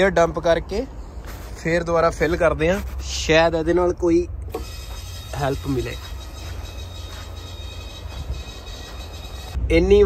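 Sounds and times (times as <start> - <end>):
diesel truck engine running: 4.4 - 9.6.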